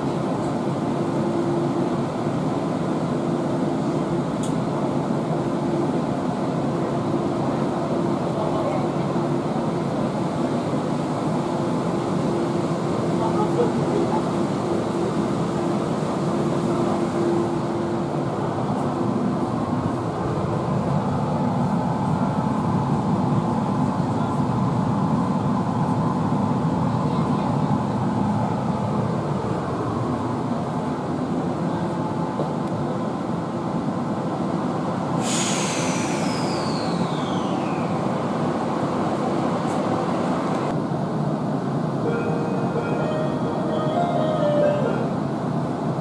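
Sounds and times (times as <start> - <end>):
subway car wheels rumbling: 0.0 - 46.0
high whine of train braking: 35.1 - 38.2.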